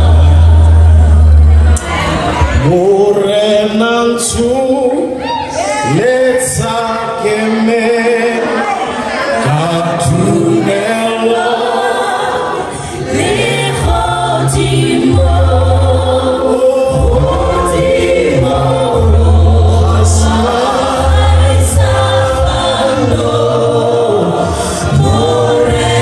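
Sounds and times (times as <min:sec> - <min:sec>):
low held bass notes: 0:00.0 - 0:03.3, 0:13.1 - 0:26.0
group singing gospel in harmony: 0:00.0 - 0:26.0.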